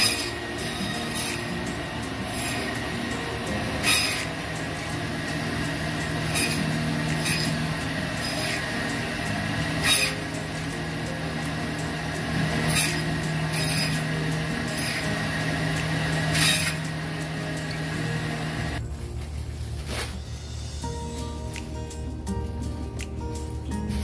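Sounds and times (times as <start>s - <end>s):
bandsaw blade rasping through meat: 0.0s - 1.7s, 2.3s - 4.3s, 6.2s - 8.8s, 9.7s - 10.4s, 12.4s - 15.2s, 16.3s - 16.9s
meat bandsaw motor hum: 0.0s - 18.8s.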